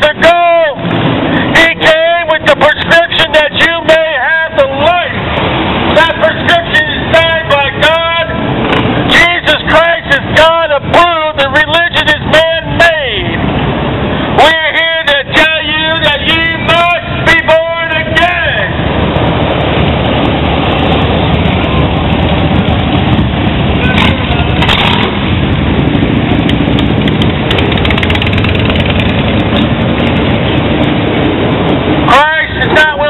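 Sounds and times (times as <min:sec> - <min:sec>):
loud voice: 0:00.0 - 0:00.8, 0:01.5 - 0:05.2, 0:05.9 - 0:08.4, 0:09.1 - 0:13.4, 0:14.4 - 0:18.8, 0:32.1 - 0:33.0
street traffic passing: 0:00.0 - 0:33.0.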